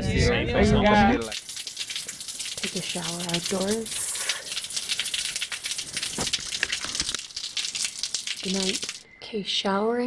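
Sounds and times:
shower water spraying: 1.2 - 9.0.

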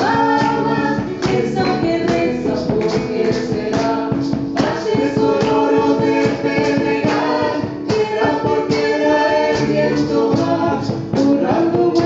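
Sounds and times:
acoustic guitar: 0.0 - 12.0
hand percussion beat: 0.0 - 12.0
voices singing together: 0.0 - 12.0.

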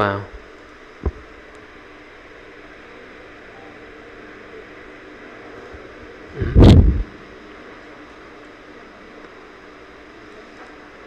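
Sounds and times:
loud muffled thump: 6.4 - 7.1.

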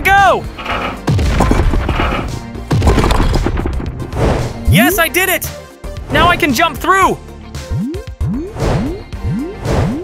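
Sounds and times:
background music: 0.0 - 10.0
clatter of blocks breaking: 1.2 - 3.8.

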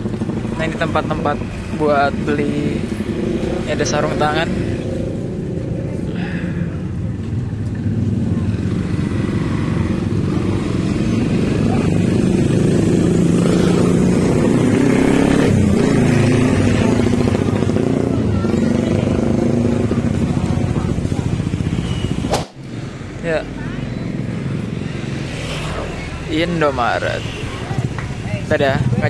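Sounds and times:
motorcycle and car engines passing: 0.0 - 29.0.

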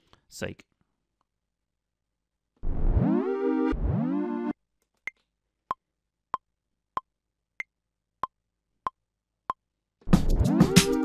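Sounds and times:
synth notes with pitch dip: 2.6 - 4.6.

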